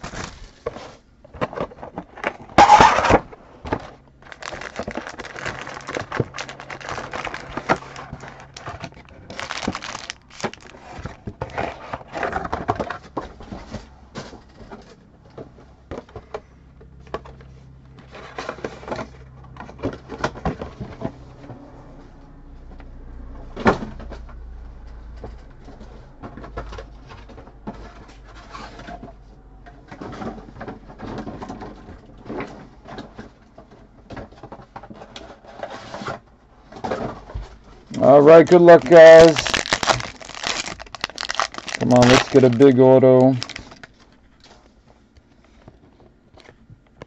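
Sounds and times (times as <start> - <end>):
foil packs rustling: 0.0 - 15.0, 36.9 - 44.8.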